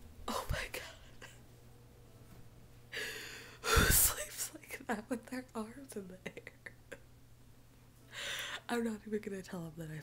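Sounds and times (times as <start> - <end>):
steady low hum: 0.0 - 10.0
woman whispering: 0.3 - 1.4.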